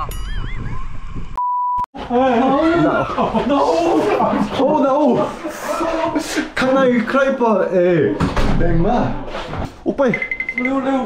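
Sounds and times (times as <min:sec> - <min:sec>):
comic wobbling whistle: 0:00.0 - 0:01.1
censor bleep: 0:01.4 - 0:01.9, 0:10.1 - 0:10.8.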